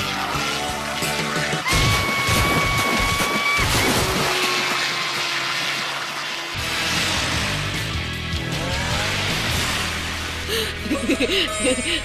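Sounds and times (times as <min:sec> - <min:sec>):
background music: 0:00.0 - 0:03.2, 0:06.6 - 0:12.0
water splashing: 0:00.4 - 0:08.1, 0:08.7 - 0:11.2.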